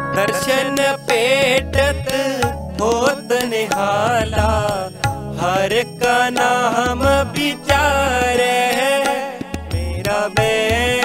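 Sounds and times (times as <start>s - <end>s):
devotional music with pitch bends: 0.0s - 11.0s.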